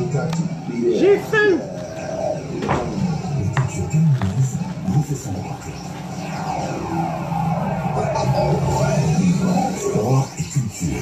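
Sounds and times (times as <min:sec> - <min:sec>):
radio jingle music: 0:00.0 - 0:11.0.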